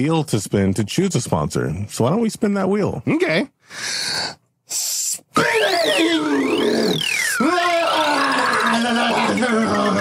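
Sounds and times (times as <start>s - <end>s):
synthesized warbling wheel-spin tone: 5.4s - 10.0s
low tones sliding downward: 5.6s - 9.3s.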